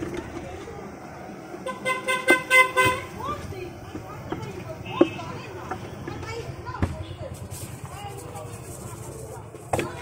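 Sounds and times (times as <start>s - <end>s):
street noise: 0.0s - 10.0s
vehicle horn honking: 1.6s - 3.1s, 4.8s - 5.4s.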